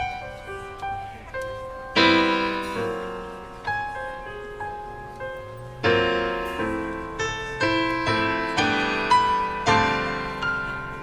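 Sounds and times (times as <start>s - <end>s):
big band playing slow ballad: 0.0s - 11.0s.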